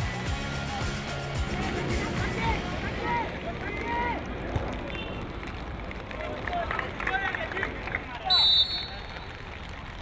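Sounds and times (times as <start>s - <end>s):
steady background noise: 0.0s - 10.0s
players shouting: 0.2s - 5.0s.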